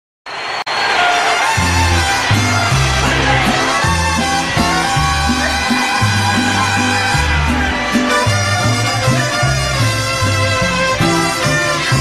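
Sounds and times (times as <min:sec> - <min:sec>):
mariachi band instrumental: 0:00.5 - 0:12.0.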